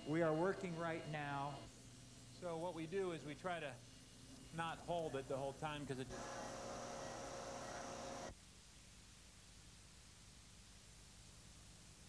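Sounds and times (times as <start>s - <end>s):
electrical hum of pitched tones: 0.0s - 8.3s.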